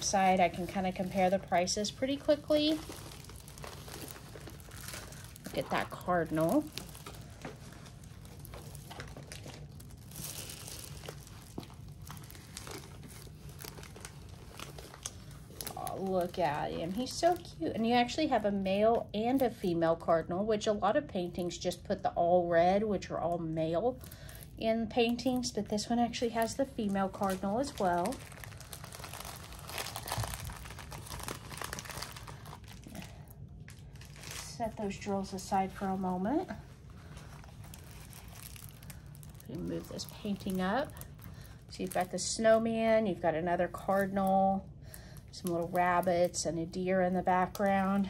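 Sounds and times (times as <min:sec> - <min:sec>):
plastic film crinkling and rustling: 0:00.0 - 0:20.2, 0:23.8 - 0:48.0.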